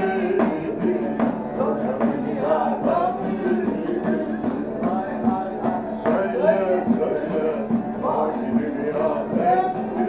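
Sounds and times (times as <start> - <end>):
person singing folk song: 0.0 - 10.0
plucked and strummed lute: 0.0 - 10.0.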